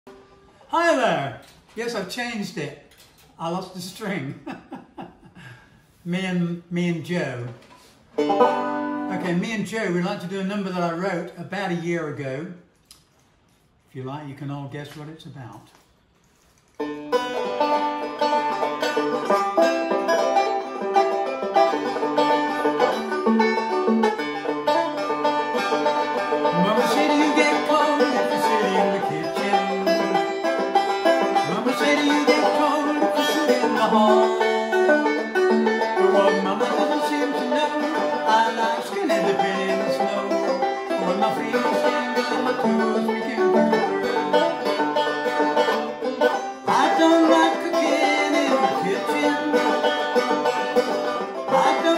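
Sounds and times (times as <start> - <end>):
banjo picking: 7.4 - 11.2, 16.8 - 51.9
man singing: 26.5 - 30.2, 31.4 - 35.2, 35.8 - 44.4, 46.7 - 50.0, 51.5 - 51.9.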